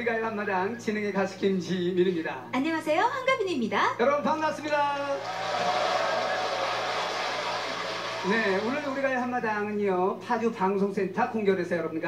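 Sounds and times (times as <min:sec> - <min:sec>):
audience applauding through tv speaker: 0:05.1 - 0:09.6.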